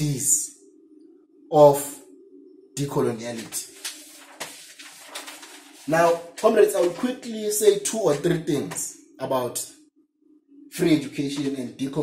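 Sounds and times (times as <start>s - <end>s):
low bird cooing: 0.0s - 3.3s.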